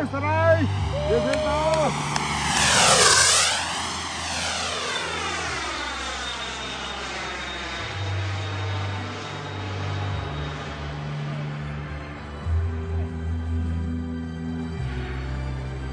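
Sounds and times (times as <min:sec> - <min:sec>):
jet turbine whooshing past: 0:00.0 - 0:12.6
turbine whine: 0:00.0 - 0:15.9.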